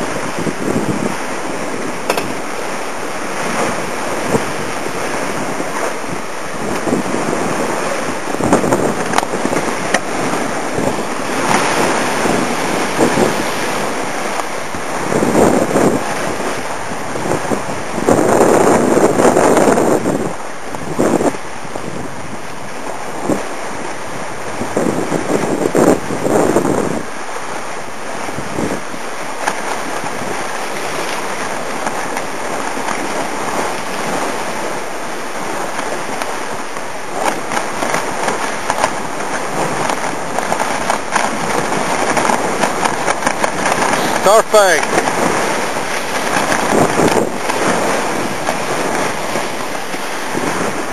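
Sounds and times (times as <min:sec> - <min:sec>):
water rushing past hull: 0:00.0 - 0:50.9
wind buffeting microphone: 0:00.0 - 0:50.9.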